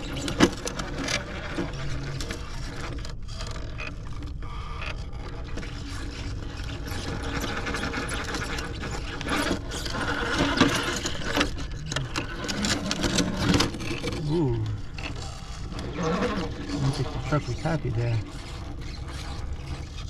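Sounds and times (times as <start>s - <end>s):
tires scraping on rock: 0.0s - 20.0s
toy truck electric motor running: 0.0s - 20.0s.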